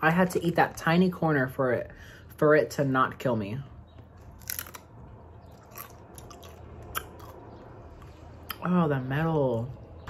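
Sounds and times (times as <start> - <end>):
chewing tortilla chip: 3.9 - 8.6.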